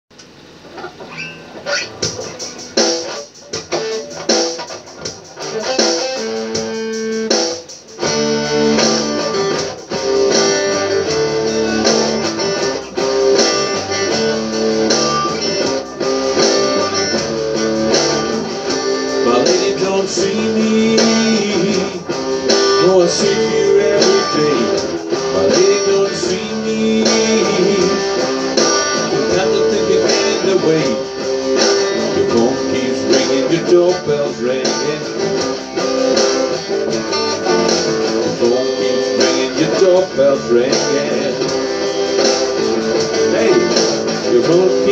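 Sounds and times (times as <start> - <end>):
electric guitar through amp: 0.1 - 44.9
bass line: 8.0 - 44.9.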